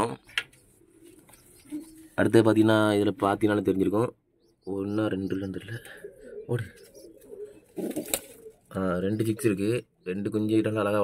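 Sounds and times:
pigeons cooing: 0.6s - 2.6s, 4.3s - 10.2s.

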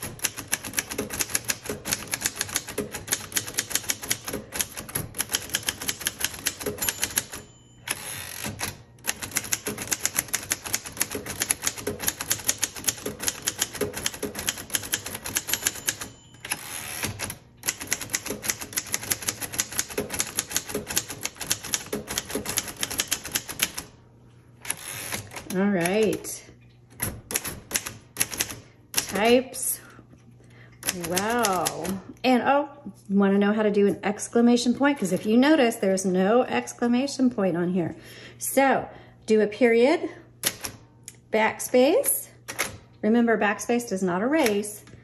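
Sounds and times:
manual typewriter typing: 0.0s - 23.9s, 24.6s - 26.3s, 27.0s - 29.4s, 30.8s - 32.0s.

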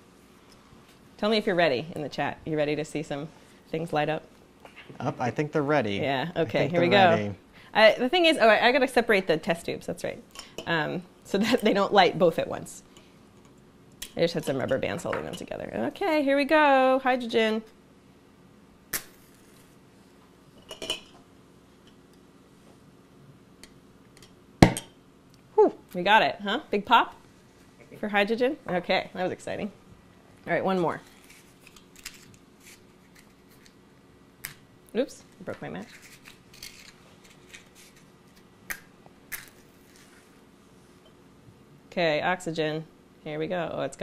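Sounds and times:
match being struck: 18.9s - 19.7s.

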